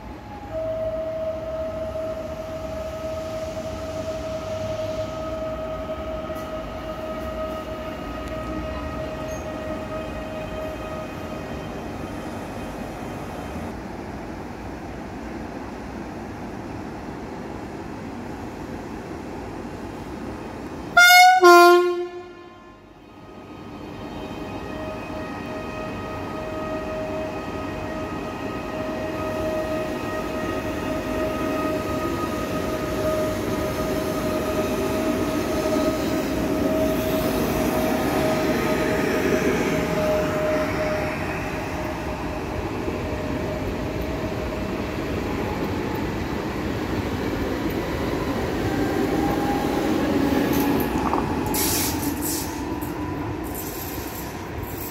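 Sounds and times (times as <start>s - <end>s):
train whine: 0.0s - 54.9s
wheels rumbling on rail: 0.0s - 54.9s
loud train horn blast: 20.9s - 23.0s, 24.2s - 39.0s.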